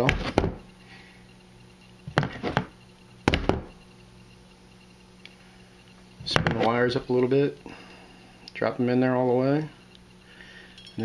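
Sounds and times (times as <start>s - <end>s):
faint steady hum: 0.0s - 11.0s
tools clattering on a workbench: 10.7s - 11.0s.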